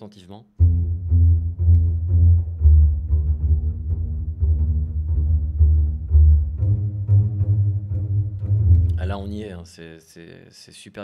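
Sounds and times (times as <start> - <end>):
double basses playing low notes: 0.6 - 9.7.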